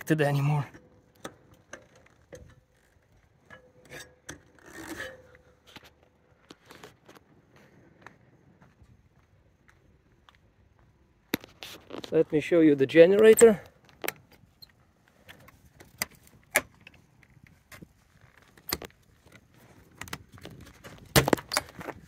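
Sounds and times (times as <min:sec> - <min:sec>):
knocks and scrapes on metal ladder: 0:00.2 - 0:06.9.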